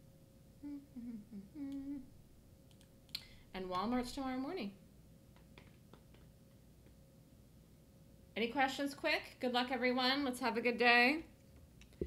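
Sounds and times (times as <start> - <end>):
woman humming: 0.6 - 2.2.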